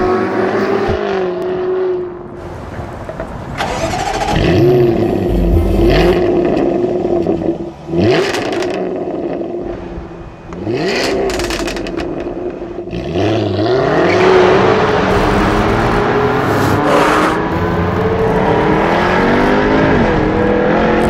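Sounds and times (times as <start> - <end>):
car engine revving: 3.6 - 9.9, 10.5 - 21.0.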